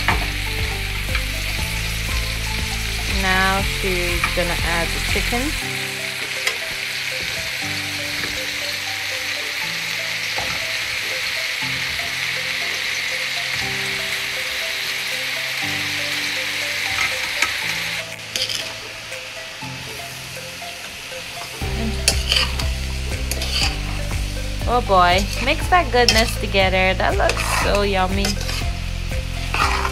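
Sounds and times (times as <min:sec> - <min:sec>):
food sizzling in a pot: 0:00.0 - 0:29.9
metal spatula scraping a pot: 0:18.4 - 0:18.7, 0:22.0 - 0:22.6, 0:23.3 - 0:23.8, 0:27.3 - 0:28.7, 0:29.4 - 0:29.9.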